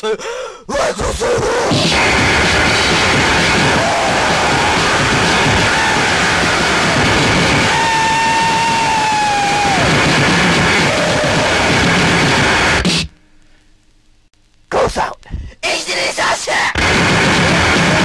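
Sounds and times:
distorted noise music: 0.7 - 18.0.

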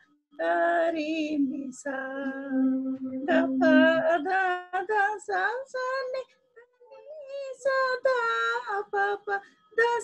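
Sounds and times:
woman singing scale syllables: 0.4 - 6.2.

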